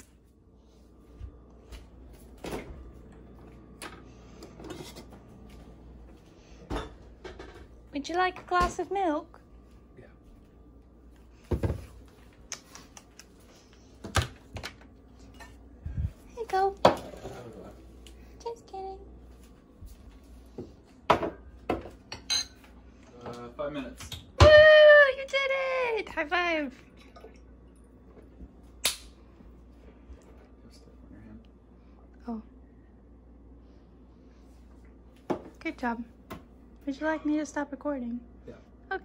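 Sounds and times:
faint steady hum: 0.0s - 39.0s.

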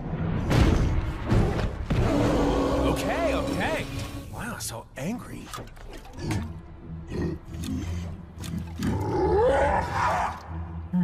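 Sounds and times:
deep angry growls: 1.9s - 3.8s.

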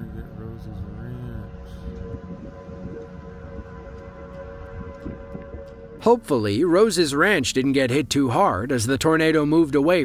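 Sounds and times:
wind rumble on microphone: 0.0s - 6.0s
warning siren steady tone: 0.0s - 7.4s.

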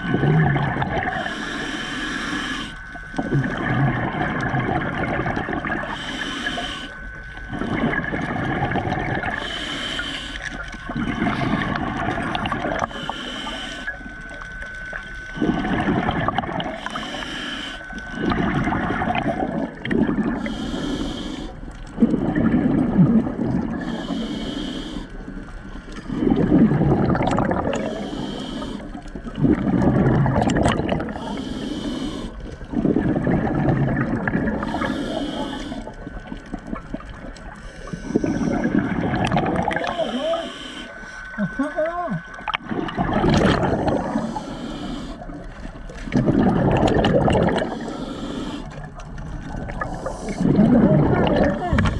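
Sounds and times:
gurgling exhaled bubbles: 0.0s - 1.4s, 3.1s - 6.6s, 7.4s - 9.6s, 10.5s - 13.0s, 14.8s - 17.2s, 18.0s - 20.9s, 21.8s - 24.2s, 26.0s - 40.6s, 41.4s - 51.9s
regulator inhale hiss: 1.1s - 3.2s, 5.8s - 7.8s, 9.2s - 14.4s, 16.6s - 18.6s, 20.2s - 22.0s, 23.8s - 26.4s, 27.8s - 29.2s, 31.0s - 32.7s, 34.5s - 36.4s, 37.4s - 39.1s, 39.8s - 41.5s, 43.7s - 46.1s, 47.5s - 50.6s.

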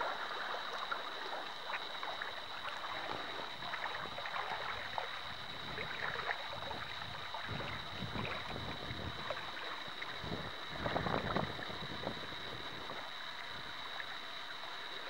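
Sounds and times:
river water lapping: 0.0s - 15.0s
thin high-pitched whine: 0.0s - 15.0s
wind buffeting microphone: 5.3s - 9.4s, 10.2s - 13.0s.

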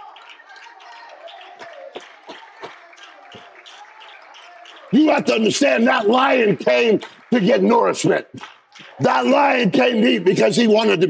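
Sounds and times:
faint voices: 0.0s - 10.4s
hand claps: 0.0s - 11.0s.

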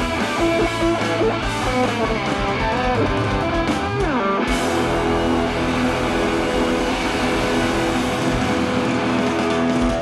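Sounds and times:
distorted electric guitars: 0.0s - 10.0s.

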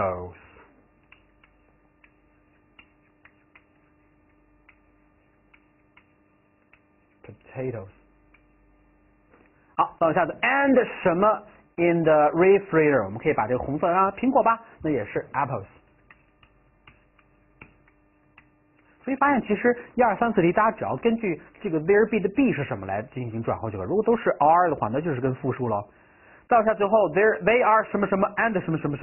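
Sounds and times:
faint steady hum: 0.0s - 29.0s
pen tapping on screen: 1.0s - 7.1s, 16.0s - 18.9s
pen tapping on writing board: 16.1s - 18.5s.

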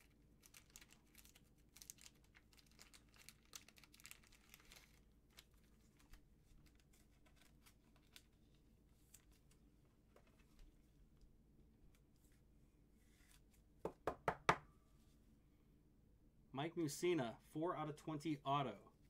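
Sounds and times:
plastic card sleeve crinkling: 0.0s - 10.7s.

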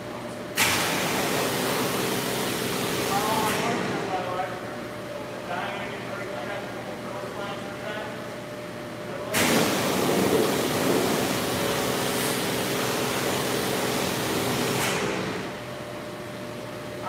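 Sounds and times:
pressure washer spray hiss: 9.4s - 15.1s.

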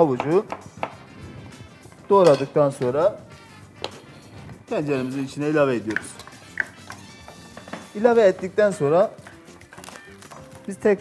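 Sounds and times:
wooden spoon stirring: 4.0s - 11.0s.

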